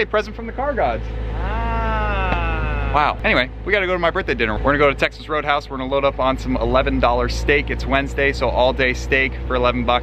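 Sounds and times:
car engine revving: 0.0s - 10.0s.

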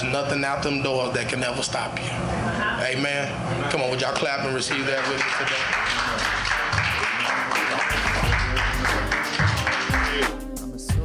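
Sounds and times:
congregation clapping: 4.6s - 10.4s
church music: 5.8s - 10.5s
deep bass notes: 7.9s - 11.0s.

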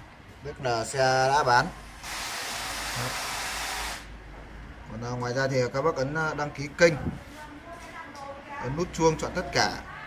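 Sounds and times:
steady hiss of noise: 0.0s - 10.0s.

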